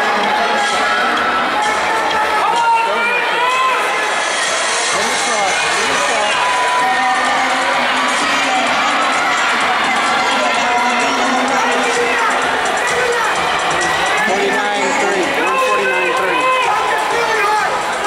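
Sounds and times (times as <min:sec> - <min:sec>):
crowd cheering and shouting: 0:00.0 - 0:18.0.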